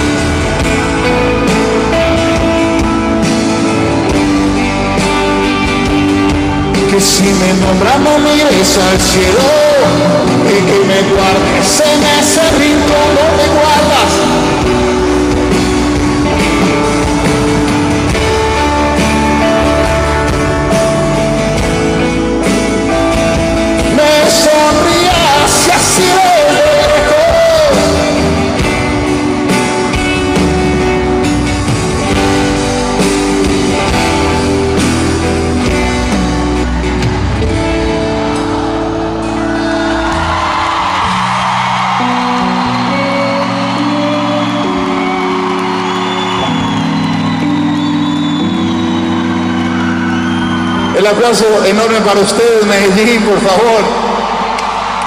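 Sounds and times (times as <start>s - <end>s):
acoustic guitar and band: 0.0s - 55.0s
man singing: 6.7s - 14.6s, 23.9s - 28.6s
crowd cheering and whooping: 11.3s - 52.3s, 53.3s - 55.0s.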